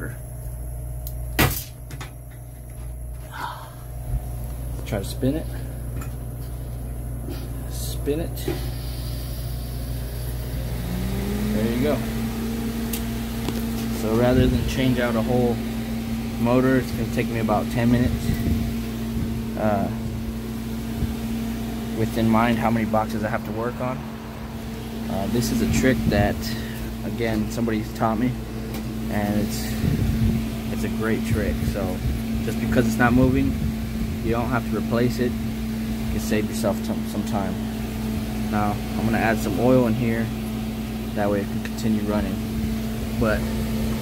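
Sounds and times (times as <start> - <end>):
steady low hum: 0.0 - 44.0.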